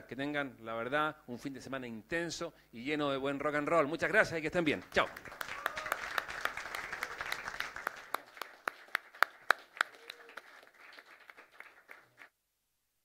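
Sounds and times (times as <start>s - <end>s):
audience applauding: 5.0s - 12.3s.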